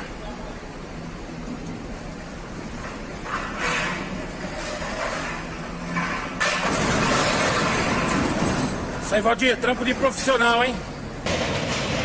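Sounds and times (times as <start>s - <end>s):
heavy truck engine under load: 0.0s - 12.0s.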